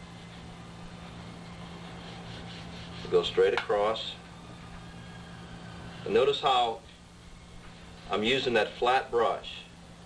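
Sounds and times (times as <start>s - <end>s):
brush on paper: 0.0s - 3.5s
recording hiss and hum: 0.0s - 10.0s.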